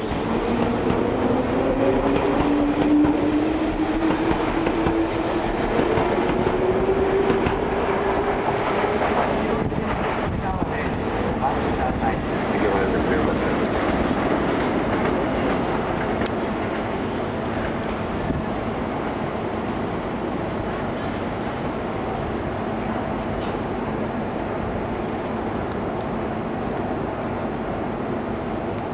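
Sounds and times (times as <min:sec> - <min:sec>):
electric train rumbling on rails: 0:00.0 - 0:28.9.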